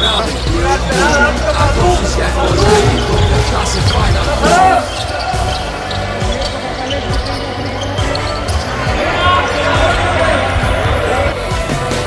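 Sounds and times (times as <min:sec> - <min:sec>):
background music: 0:00.0 - 0:12.0
players' voices: 0:00.0 - 0:12.0.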